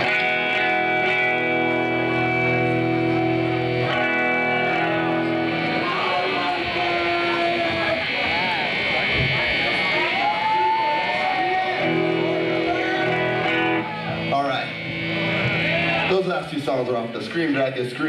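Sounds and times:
high steady tone: 0.0 - 16.3
electric guitars ringing: 0.0 - 18.0
man talking into microphone: 16.0 - 18.0.

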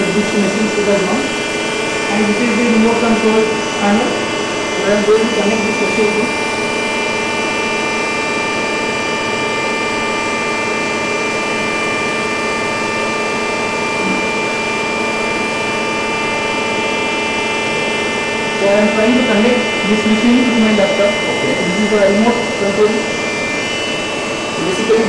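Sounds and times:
welding machine humming: 0.0 - 25.0.

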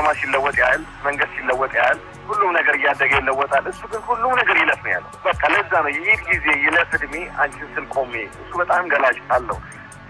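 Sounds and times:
narrator talking: 0.0 - 9.6.

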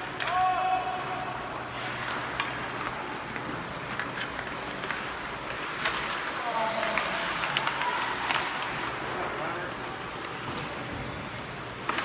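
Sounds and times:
hockey sticks clicking on puck: 0.0 - 10.9, 11.6 - 12.0
skates scraping ice: 0.0 - 12.0.

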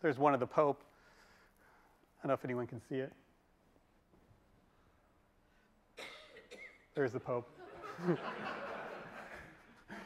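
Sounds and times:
person coughing: 6.0 - 7.0.

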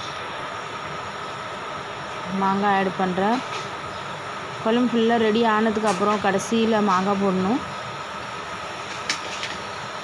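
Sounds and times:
kitchen hum and hiss: 0.0 - 10.0.

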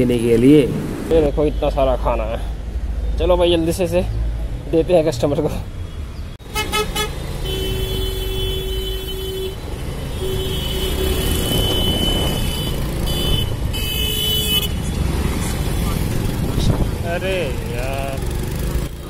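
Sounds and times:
vehicle horns honking: 6.4 - 15.1
scooter engine rumbling: 6.4 - 19.0
wind on microphone: 16.3 - 17.0.

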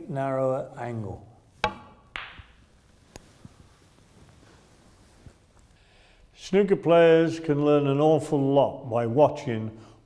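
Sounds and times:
snooker balls knocking: 1.6 - 2.6.

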